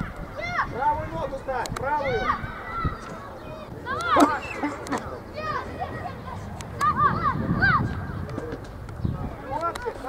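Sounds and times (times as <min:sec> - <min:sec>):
people shouting and calling: 0:00.0 - 0:08.3.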